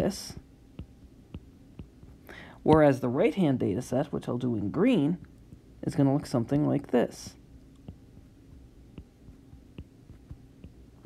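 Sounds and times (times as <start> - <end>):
low room hum: 0.0 - 11.0
stylus tapping touchscreen: 0.8 - 2.8, 7.8 - 10.8.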